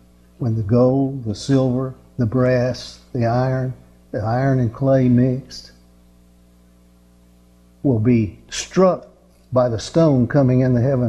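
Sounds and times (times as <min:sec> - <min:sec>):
electrical mains hum: 0:00.0 - 0:11.0
man speaking: 0:00.4 - 0:05.8, 0:07.8 - 0:11.0.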